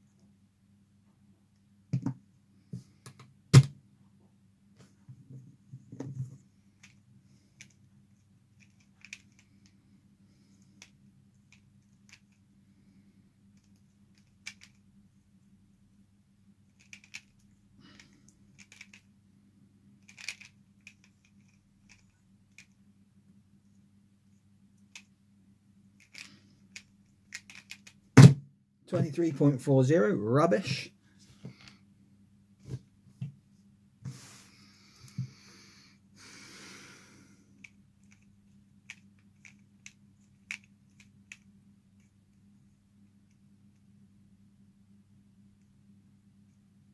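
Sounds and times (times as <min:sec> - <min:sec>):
faint steady hum: 0:00.0 - 0:46.9
plastic puzzle pieces clicking: 0:08.6 - 0:09.6, 0:13.6 - 0:14.8, 0:16.8 - 0:17.4, 0:18.0 - 0:19.0, 0:20.0 - 0:22.7, 0:26.0 - 0:28.0, 0:38.8 - 0:41.4.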